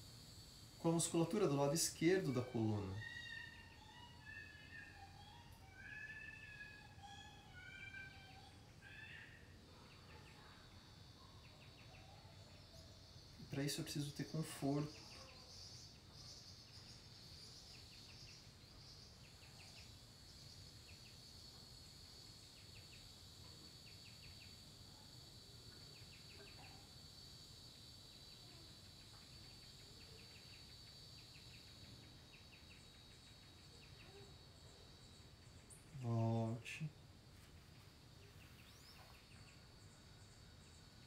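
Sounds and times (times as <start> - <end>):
high insect drone: 0.0 - 41.0.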